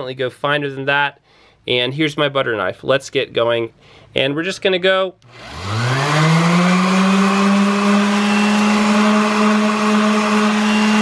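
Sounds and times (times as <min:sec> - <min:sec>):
orbital sander whining: 0:05.2 - 0:11.0
sanding pad grinding metal: 0:05.3 - 0:11.0.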